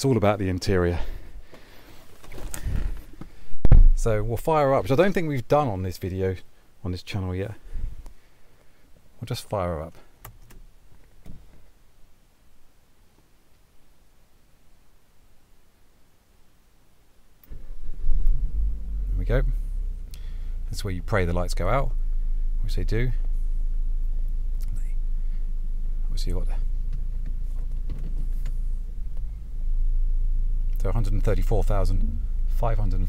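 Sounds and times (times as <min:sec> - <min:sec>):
muffled thumps and rustling: 0:01.2 - 0:04.2, 0:10.5 - 0:11.7, 0:26.7 - 0:29.4
heavy thud: 0:03.6 - 0:04.2
car engine starting and idling: 0:17.4 - 0:33.0.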